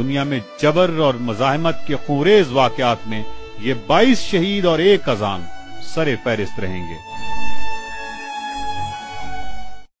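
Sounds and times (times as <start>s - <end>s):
background music of long held tones: 0.0s - 9.9s.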